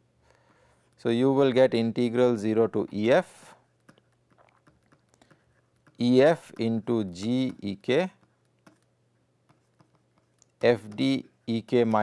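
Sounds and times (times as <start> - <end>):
stylus tapping on tablet screen: 3.8 - 11.2.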